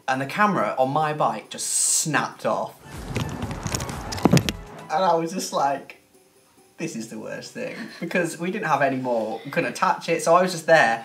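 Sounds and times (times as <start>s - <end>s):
background music: 0.0s - 11.0s
wind rushing over camera: 2.8s - 4.6s.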